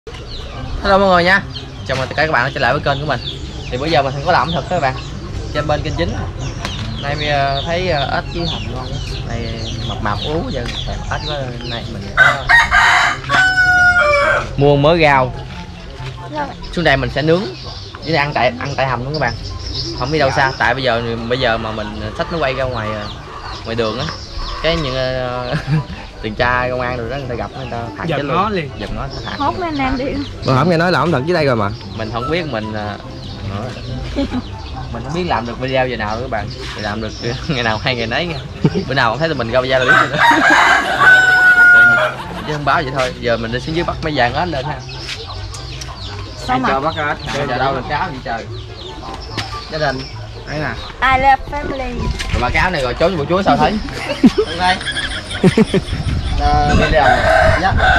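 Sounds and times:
rooster crowing: 12.2 - 14.6, 39.8 - 42.4, 56.7 - 57.9.

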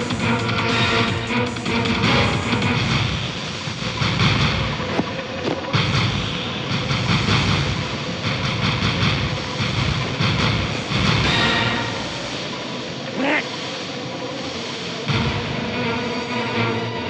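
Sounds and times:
background music: 0.0 - 17.0
noise effects: 2.7 - 8.3, 8.9 - 17.0.

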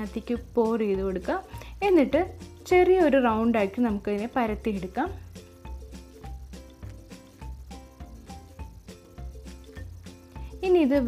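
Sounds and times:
voice: 0.0 - 5.2, 10.6 - 11.0
background music with gliding notes: 0.0 - 11.0.

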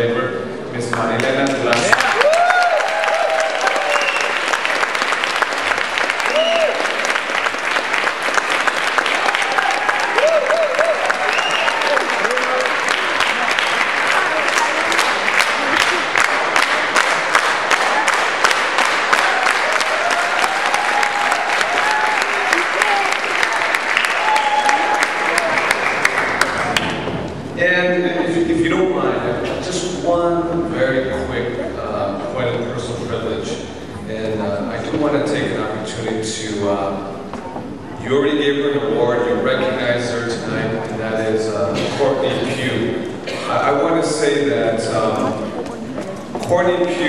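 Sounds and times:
audience applauding: 0.9 - 27.4
cheers and voices calling out: 1.7 - 4.4, 6.2 - 7.0, 9.2 - 16.9, 17.7 - 26.9.

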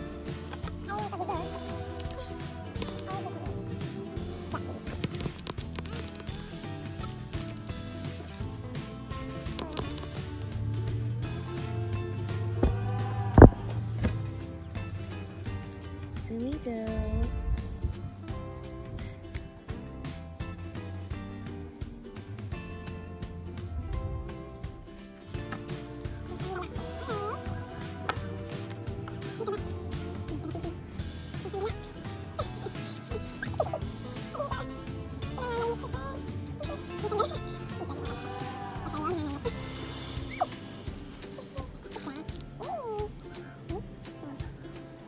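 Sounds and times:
music with held notes: 0.0 - 45.0.

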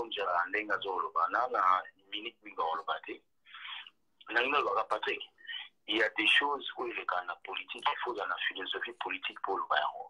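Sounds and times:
person talking over video call: 0.0 - 10.0.

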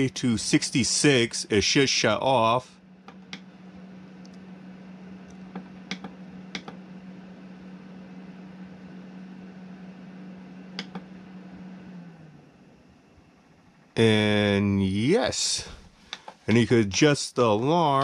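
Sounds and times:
exhaust fan humming: 0.0 - 18.0.

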